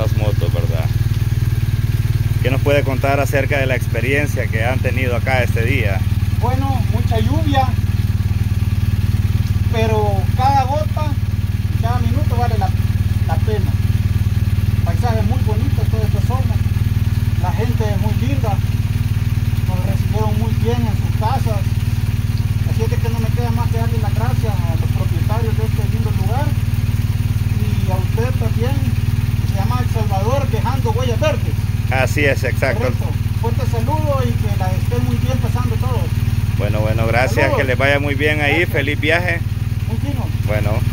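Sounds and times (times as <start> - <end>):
people talking: 0.0 - 0.9, 2.4 - 7.8, 9.7 - 11.2, 11.8 - 13.8, 14.8 - 16.6, 17.4 - 18.6, 19.6 - 21.7, 22.6 - 26.6, 27.5 - 40.9
motorcycle engine idling: 0.0 - 40.9.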